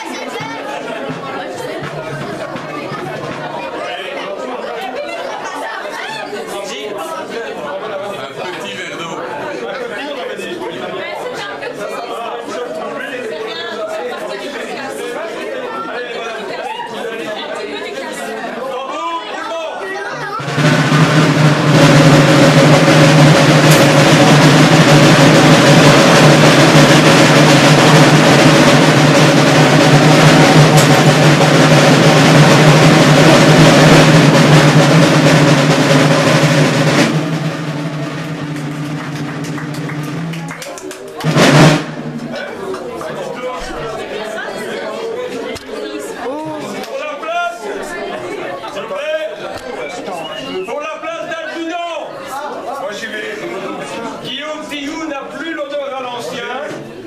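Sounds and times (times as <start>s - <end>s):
loud drum roll: 0.0s - 3.8s, 20.2s - 44.1s.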